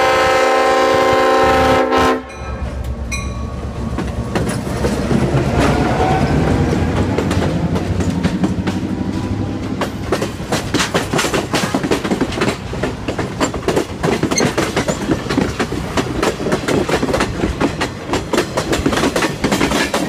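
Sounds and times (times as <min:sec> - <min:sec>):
diesel locomotive engine: 0:00.0 - 0:20.0
train wheels clicking over rail joints: 0:02.6 - 0:20.0.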